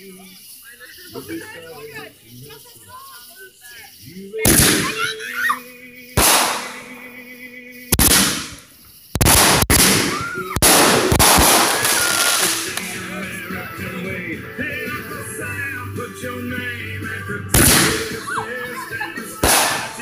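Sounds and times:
fireworks bangs: 0:04.4 - 0:05.0, 0:06.2 - 0:07.0, 0:07.9 - 0:13.1, 0:17.5 - 0:18.3, 0:19.1 - 0:20.0.

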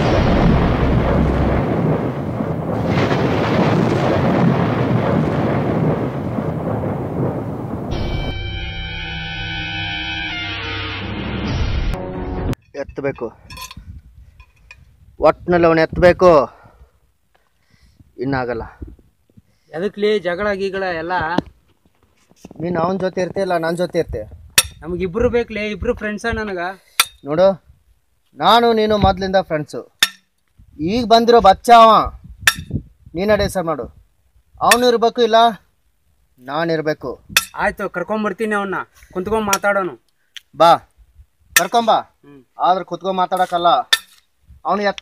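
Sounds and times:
man speaking: 0:41.6 - 0:43.9.

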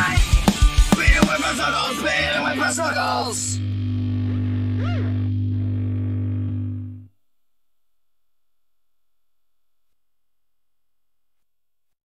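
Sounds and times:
distorted electric guitar and bass chord: 0:01.1 - 0:07.1.

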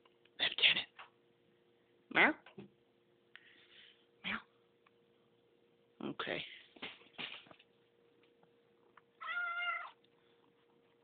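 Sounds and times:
cat mewing: 0:09.2 - 0:10.0.

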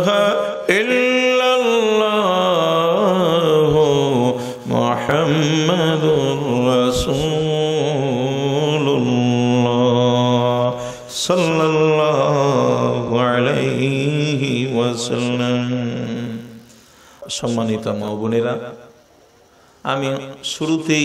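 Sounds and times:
man chanting into a microphone: 0:00.0 - 0:18.8, 0:19.8 - 0:21.0.

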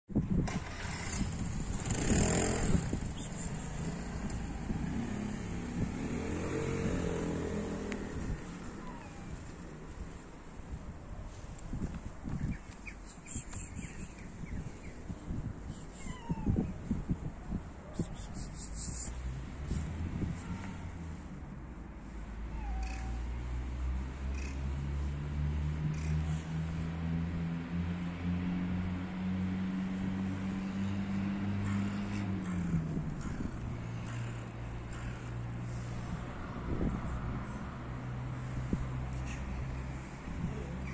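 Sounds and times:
cat meowing: 0:16.0 - 0:16.8, 0:22.5 - 0:23.3
vehicle engine running: 0:19.1 - 0:40.9.

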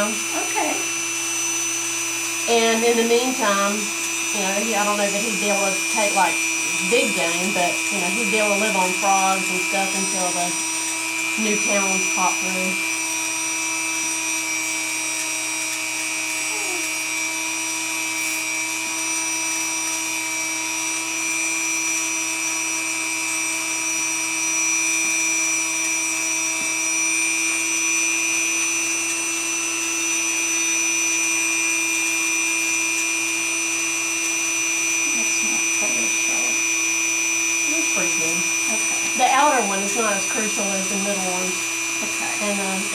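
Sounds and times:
rotary tool whining: 0:00.0 - 0:42.9.

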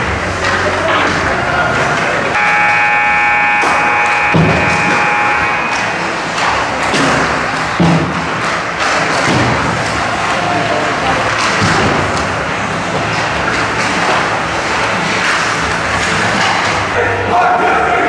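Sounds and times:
held chord of steady tones: 0:02.4 - 0:06.0
thuds against boards: 0:06.9 - 0:09.8.

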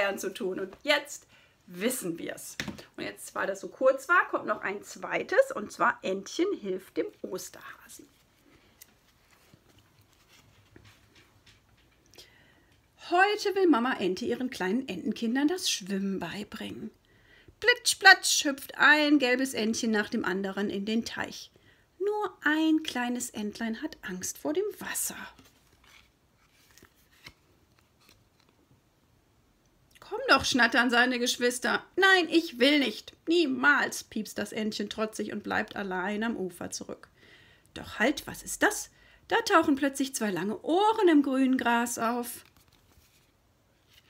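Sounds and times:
board book page turning: 0:07.1 - 0:11.7, 0:25.3 - 0:28.7, 0:42.3 - 0:44.0
cardboard book clicks and rustles: 0:25.4 - 0:28.6.

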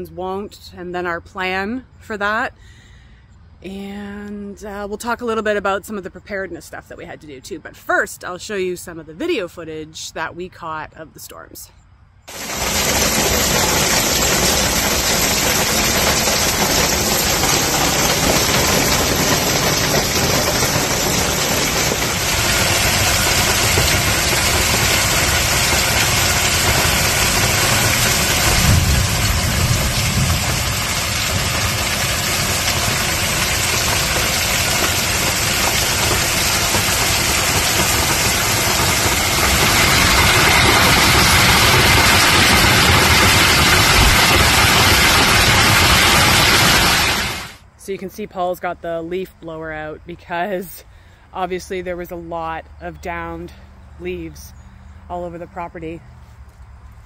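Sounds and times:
heavy rain and hail: 0:12.3 - 0:47.6.

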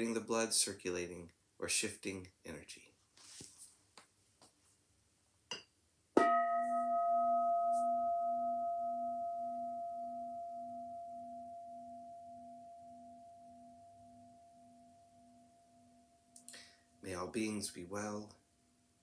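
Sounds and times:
singing bowl ringing: 0:06.2 - 0:17.0.

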